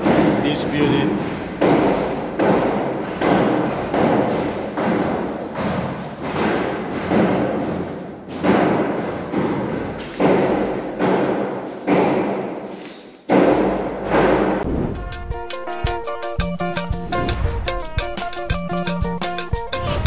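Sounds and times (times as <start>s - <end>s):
heavy thumps: 13.3s - 15.5s.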